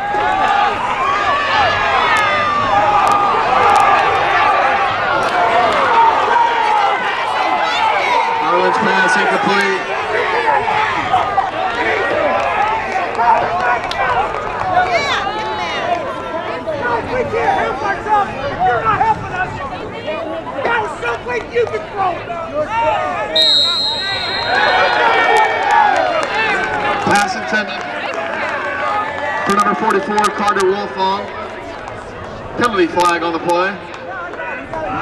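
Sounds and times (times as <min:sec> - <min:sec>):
stadium crowd shouting and cheering: 0:00.0 - 0:35.0.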